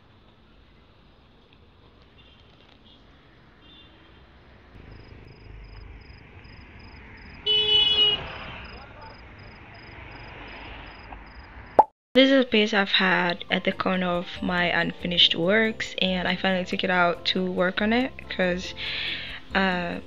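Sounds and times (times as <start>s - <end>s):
faint street noise: 0.0s - 13.2s
vehicle horn honk: 7.4s - 8.5s.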